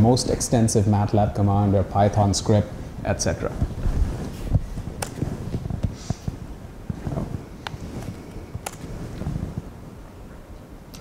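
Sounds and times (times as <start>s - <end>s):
low room rumble: 0.0s - 11.0s
sharp clicks: 8.6s - 8.9s.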